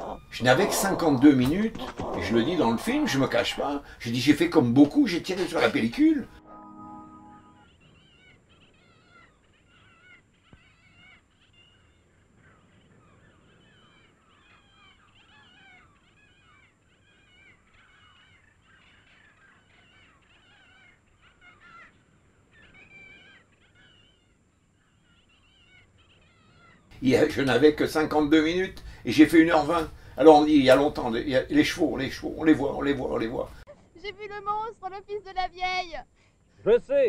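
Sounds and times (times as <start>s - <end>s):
birds chirping: 0.0s - 37.0s.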